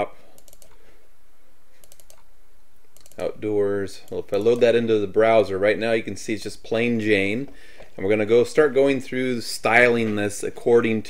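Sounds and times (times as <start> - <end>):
low background hum: 0.0 - 11.0
computer mouse clicks: 0.4 - 0.8, 1.8 - 2.2, 3.0 - 3.3.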